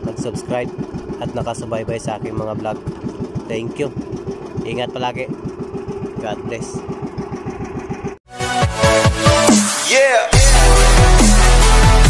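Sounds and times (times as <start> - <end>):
boat engine puttering: 0.0 - 8.2
electronic music with bass: 8.3 - 12.0.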